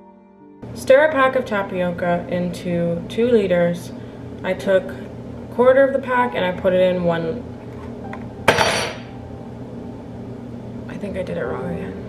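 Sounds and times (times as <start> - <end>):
hard object clattering down: 8.5 - 9.0.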